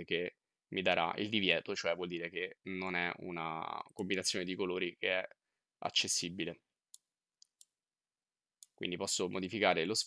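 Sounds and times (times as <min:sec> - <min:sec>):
computer mouse clicks: 0:06.9 - 0:07.8.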